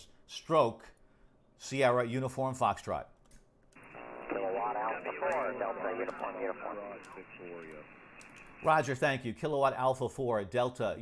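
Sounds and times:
man talking over radio: 3.8 - 8.8
atmospheric radio band noise: 3.8 - 8.9.

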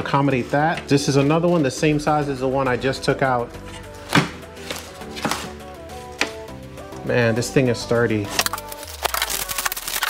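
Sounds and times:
background music: 0.0 - 10.0
handling knocks and crinkles: 3.6 - 6.5.

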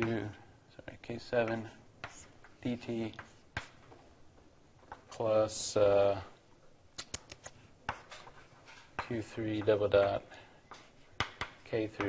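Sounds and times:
writing taps on a board: 1.4 - 5.1, 7.9 - 9.8, 10.7 - 12.0.

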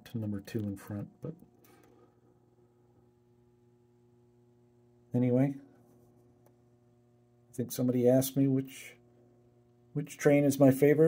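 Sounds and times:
person speaking: 0.0 - 1.4, 7.6 - 9.0
low electrical hum: 0.0 - 11.0.

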